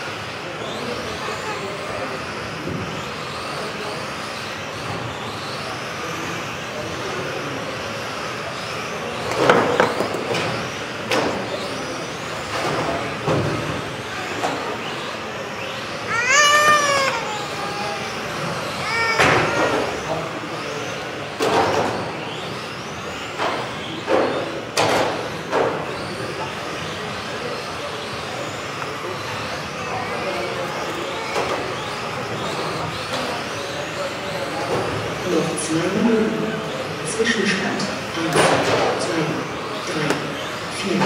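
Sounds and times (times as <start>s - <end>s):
electric motors whining: 0.0s - 41.0s.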